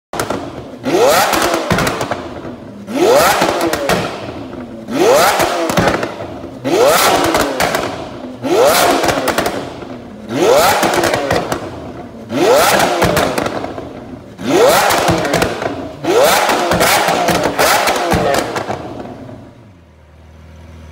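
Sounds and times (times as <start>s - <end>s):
exhaust crackles and pops: 0.1s - 19.6s
car engine revving: 0.2s - 20.0s.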